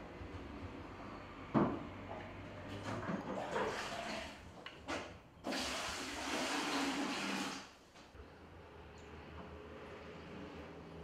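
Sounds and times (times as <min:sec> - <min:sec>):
water splashing and running: 0:05.5 - 0:07.7.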